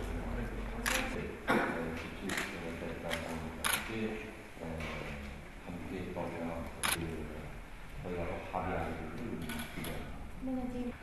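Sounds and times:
narrator speaking: 0.0 - 3.8.

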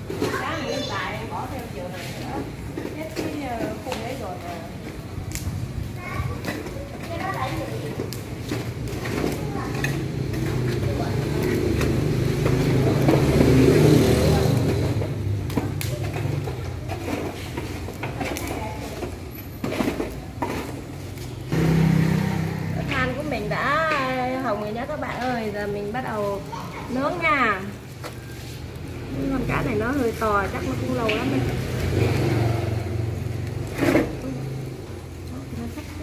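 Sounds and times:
children's voices: 0.1 - 1.6, 5.8 - 8.1, 9.0 - 10.3, 26.3 - 27.2
electric fan running: 8.2 - 15.9, 21.5 - 24.8.

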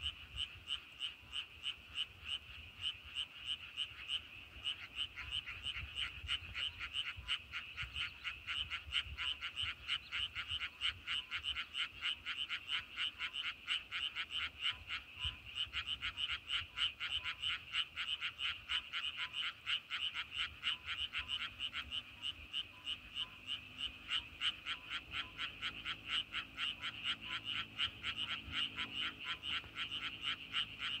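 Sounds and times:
frogs calling: 0.0 - 31.0.

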